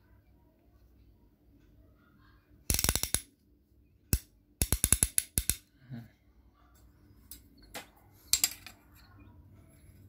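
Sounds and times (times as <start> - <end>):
ratchet wrench pawl clicking: 2.7 - 3.2.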